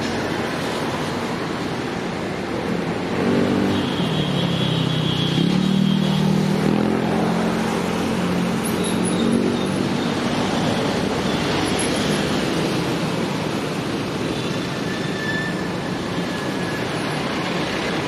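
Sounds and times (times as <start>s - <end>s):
road traffic: 0.0s - 18.0s.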